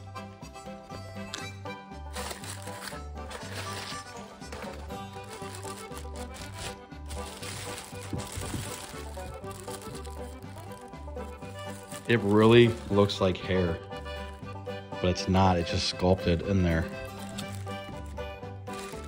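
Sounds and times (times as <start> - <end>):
plastic bag and bubble wrap crinkling: 2.1 - 19.0.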